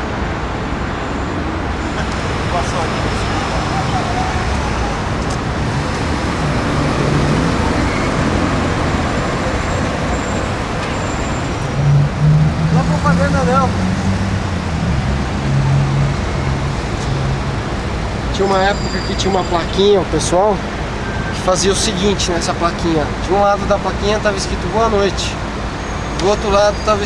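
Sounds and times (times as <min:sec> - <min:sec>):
road traffic noise: 0:00.0 - 0:27.0
voices: 0:01.8 - 0:14.2, 0:16.0 - 0:27.0.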